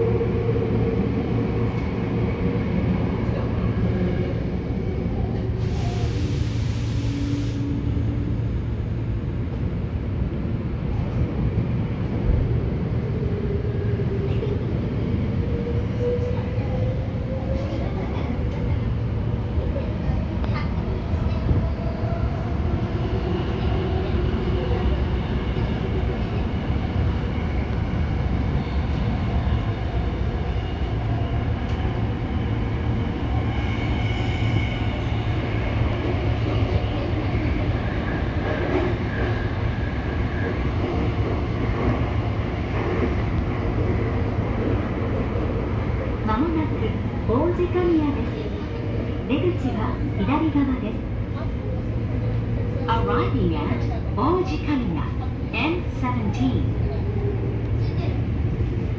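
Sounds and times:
subway train rumbling in tunnel: 0:00.0 - 0:58.9.

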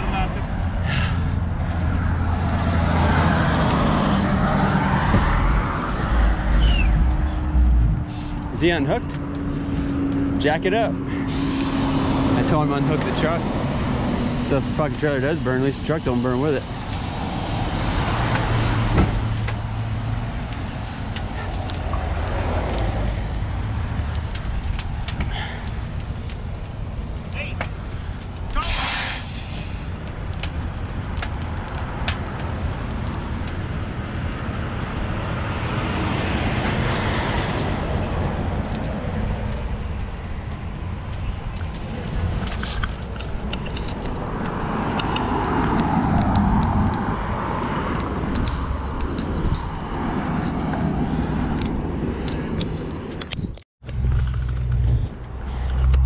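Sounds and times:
traffic engine rumble: 0:00.0 - 0:56.0
vehicles passing: 0:00.0 - 0:56.0.

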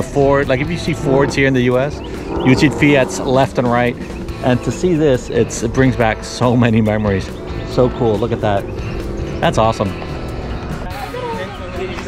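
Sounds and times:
low outdoor rumble: 0:00.0 - 0:11.2.

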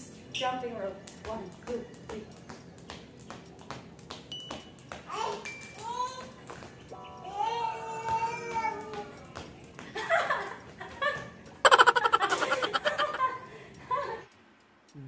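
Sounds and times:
skipping rope clicking on tiles: 0:00.4 - 0:07.0, 0:07.9 - 0:14.0
toddler babbling: 0:07.2 - 0:09.4.

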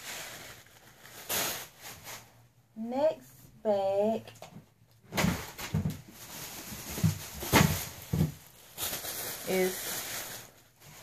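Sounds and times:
plastic bag rustling: 0:00.0 - 0:02.6, 0:05.0 - 0:11.0.

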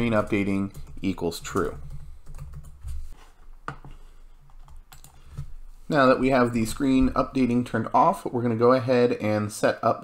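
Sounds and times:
computer keyboard typing clicks: 0:04.6 - 0:05.2.

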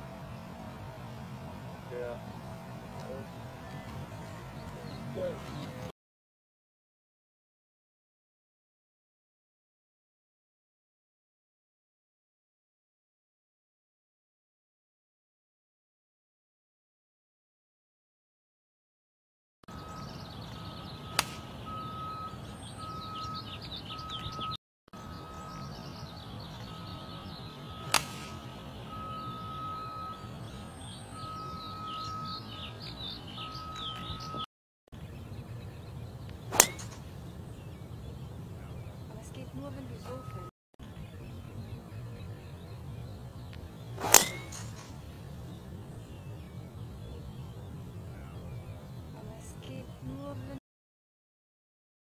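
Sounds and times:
birds chirping: 0:00.0 - 0:05.9, 0:19.7 - 0:50.6
golf driver striking ball: 0:21.1 - 0:21.5, 0:27.8 - 0:28.4, 0:36.5 - 0:37.0, 0:44.0 - 0:44.9.

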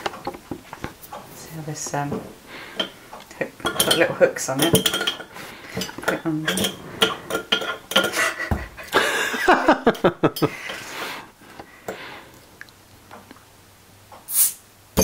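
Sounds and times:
burst of laughter: 0:08.2 - 0:10.6
bottle cap hiss: 0:14.3 - 0:14.6.

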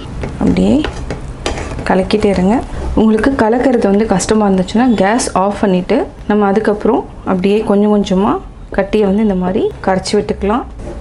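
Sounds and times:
spatula scraping a pan: 0:00.6 - 0:03.2.

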